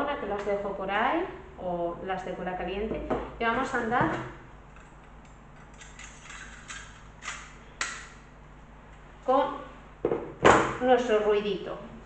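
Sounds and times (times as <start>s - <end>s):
tools clicking and knocking: 4.8s - 8.1s.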